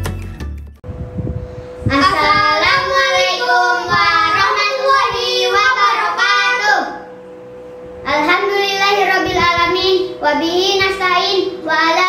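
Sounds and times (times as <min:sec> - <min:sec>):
faint steady hum: 0:00.9 - 0:12.0
boys chanting together: 0:02.0 - 0:07.0.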